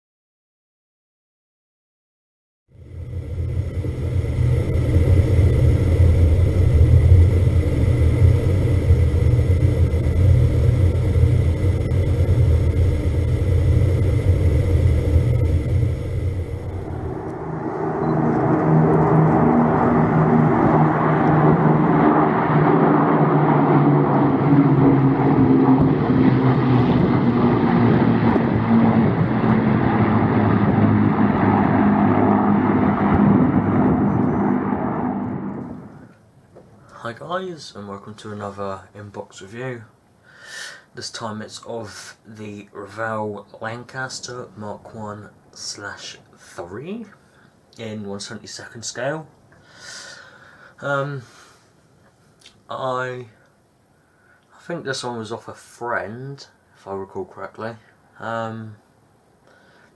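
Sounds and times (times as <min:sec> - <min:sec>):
aircraft engines rumbling: 0:02.8 - 0:36.2
planes flying over: 0:02.8 - 0:36.2.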